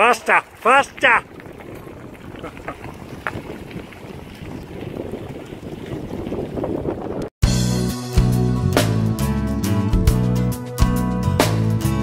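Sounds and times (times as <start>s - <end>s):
wind on microphone: 0.4s - 7.3s
bicycle tyres on gravel: 0.9s - 7.2s
music with strong bass: 7.4s - 12.0s.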